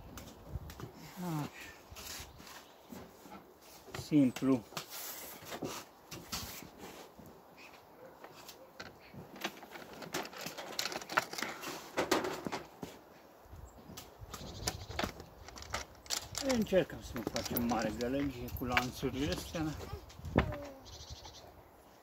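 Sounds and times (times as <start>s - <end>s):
light knocks and scrapes: 1.9s - 13.0s.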